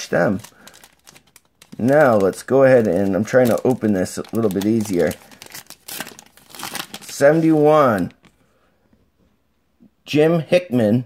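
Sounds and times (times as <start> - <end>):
wrapper crinkling and tearing: 0.0 - 8.3
scissors cutting wrapper: 0.3 - 7.3.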